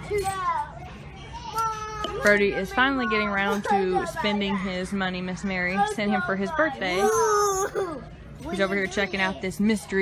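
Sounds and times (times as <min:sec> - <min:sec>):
young child making vocal sounds: 0:06.9 - 0:08.1.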